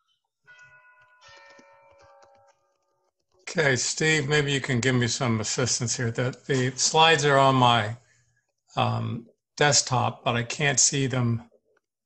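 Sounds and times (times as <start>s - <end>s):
faint chime: 0.0s - 3.7s.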